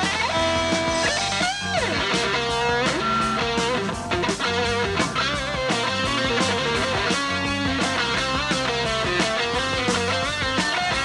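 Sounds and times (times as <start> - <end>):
lead electric guitar melody: 0.0 - 11.0
rock band playing live: 0.0 - 11.0.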